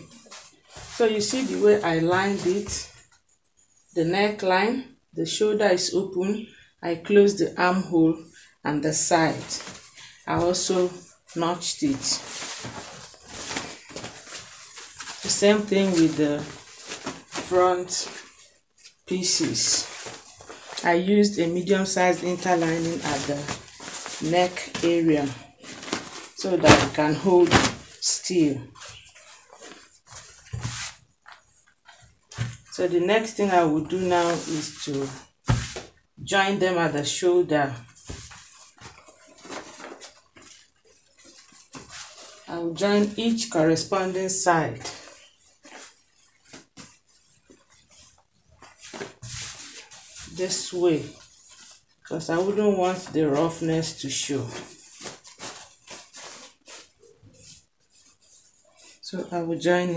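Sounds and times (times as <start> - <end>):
fabric rustling: 0.0 - 3.9, 9.0 - 36.0, 37.7 - 59.1.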